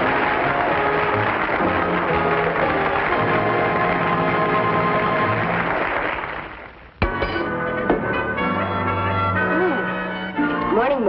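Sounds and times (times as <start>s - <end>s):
theme music with held chords: 7.0s - 11.0s.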